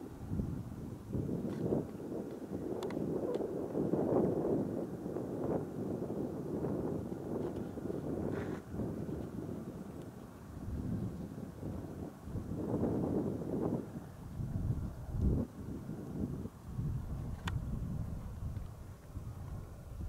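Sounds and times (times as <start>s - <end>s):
wind blowing across microphone: 0.0s - 20.0s.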